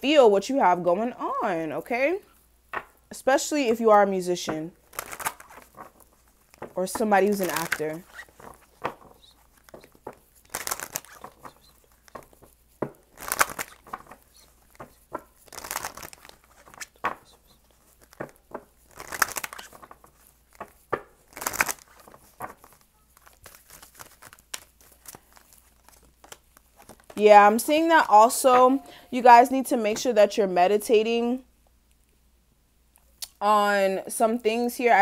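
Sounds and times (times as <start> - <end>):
cards shuffled by hand: 4.8 - 27.2.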